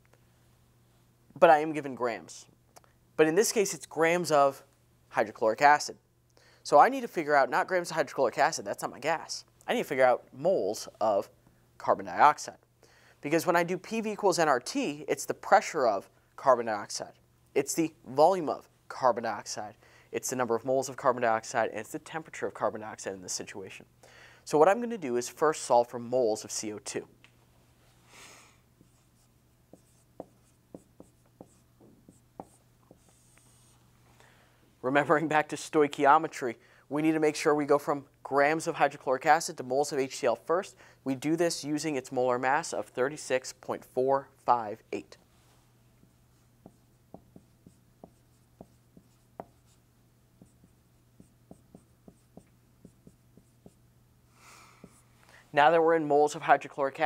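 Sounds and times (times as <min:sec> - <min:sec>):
faint low hum: 0:00.0 - 0:56.9
marker writing on a whiteboard: 0:28.8 - 0:33.8, 0:46.0 - 0:53.8, 0:54.8 - 0:55.0.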